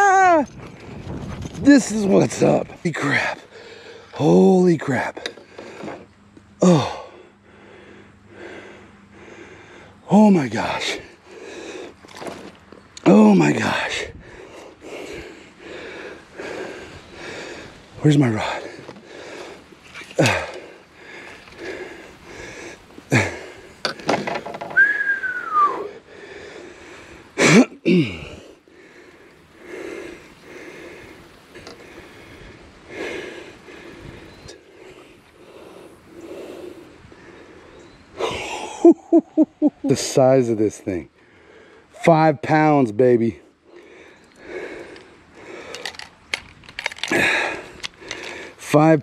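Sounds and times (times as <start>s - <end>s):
man breathing hard: 2.9s - 4.2s, 6.6s - 12.3s, 13.6s - 24.4s, 25.2s - 38.7s, 41.1s - 42.1s, 43.4s - 46.2s, 46.8s - 48.7s
man gasping and exclaiming: 6.6s - 7.4s, 20.1s - 23.7s, 27.4s - 29.0s
man whistling falling note: 24.8s - 25.9s
metallic clicks of grip tool: 45.7s - 47.2s.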